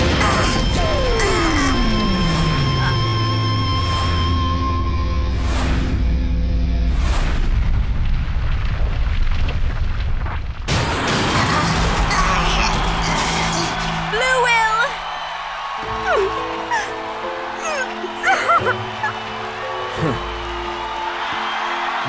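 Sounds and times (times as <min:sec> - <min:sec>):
dramatic music: 0:00.0 - 0:08.6, 0:10.7 - 0:22.0
rumbling blast: 0:05.4 - 0:13.9
gliding voice-like cries: 0:16.0 - 0:19.2.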